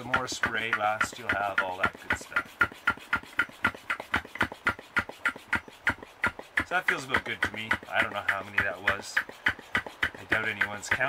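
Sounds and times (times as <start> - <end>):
pump sprayer air puffs: 0.0 - 11.0.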